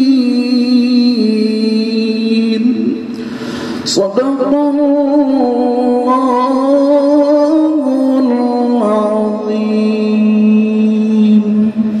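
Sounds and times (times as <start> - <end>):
man chanting into a microphone: 0.0 - 3.1, 3.8 - 12.0.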